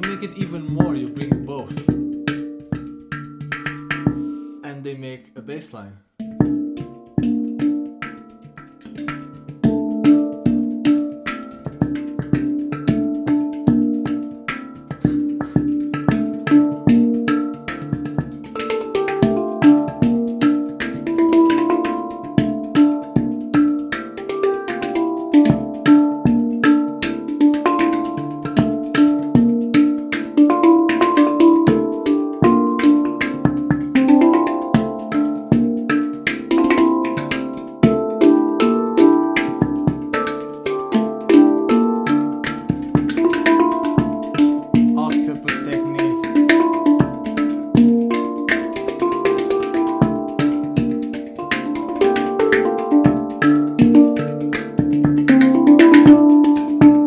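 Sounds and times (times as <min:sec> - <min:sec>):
handpan groove: 0:00.0 - 0:05.0, 0:06.1 - 0:57.0.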